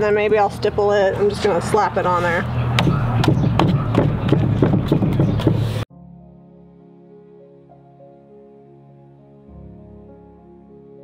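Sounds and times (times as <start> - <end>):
soft background music: 5.9 - 11.0.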